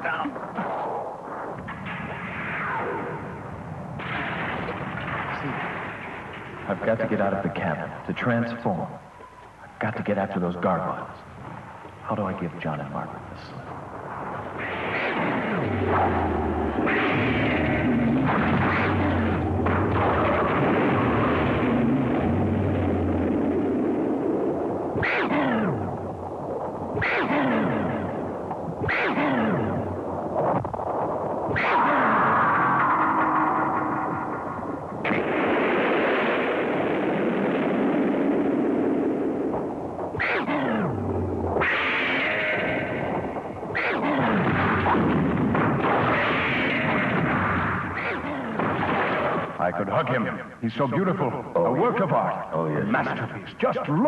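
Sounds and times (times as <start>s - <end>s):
explosion-like rumbling and blasts: 0.0s - 8.0s, 10.8s - 50.1s
quick falling screeches: 31.5s - 34.2s, 41.6s - 43.0s.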